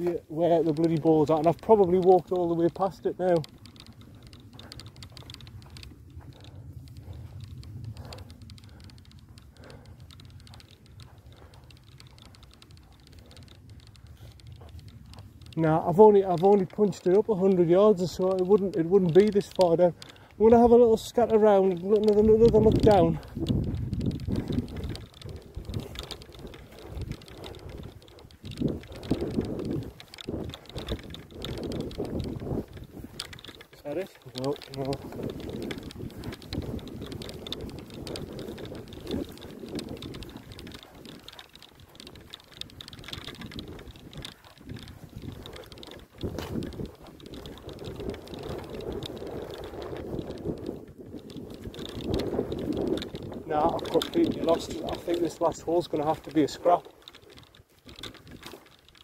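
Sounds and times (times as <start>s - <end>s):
footsteps on grass: 22.6s - 49.6s.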